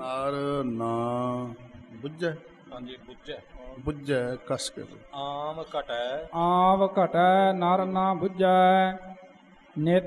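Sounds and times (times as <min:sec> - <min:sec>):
man chanting: 0:00.0 - 0:09.1, 0:09.8 - 0:10.0.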